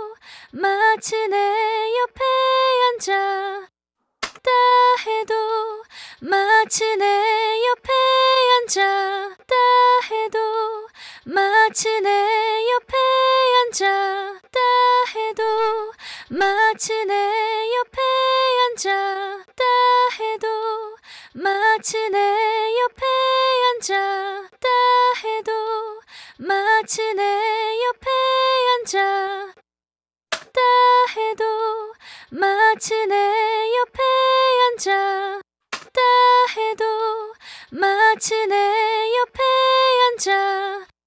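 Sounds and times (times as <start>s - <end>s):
woman singing unaccompanied: 0.0s - 3.7s, 4.4s - 29.6s, 30.5s - 41.0s.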